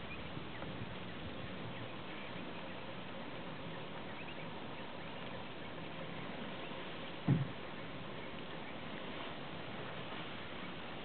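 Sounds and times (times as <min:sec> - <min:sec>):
birds chirping: 0:00.0 - 0:11.0
faint steady hum: 0:00.0 - 0:11.0
outdoor background hiss: 0:00.0 - 0:11.0.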